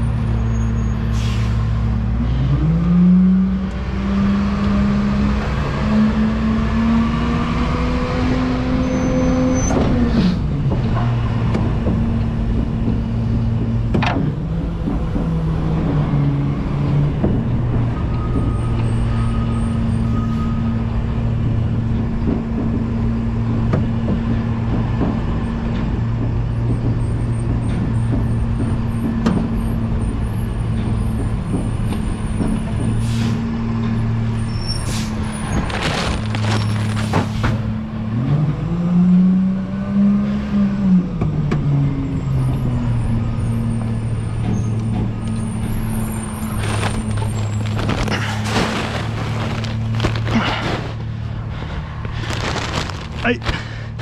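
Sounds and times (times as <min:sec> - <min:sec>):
air brake hisses: 0:01.1 - 0:01.7, 0:33.0 - 0:33.4
engine revving: 0:01.9 - 0:17.9
garbage truck engine running: 0:09.7 - 0:38.2, 0:41.2 - 0:54.0.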